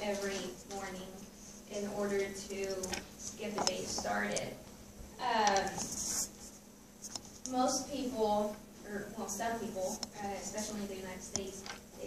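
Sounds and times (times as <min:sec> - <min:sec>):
woman speaking: 0:00.0 - 0:04.6, 0:05.2 - 0:06.0, 0:07.5 - 0:12.0.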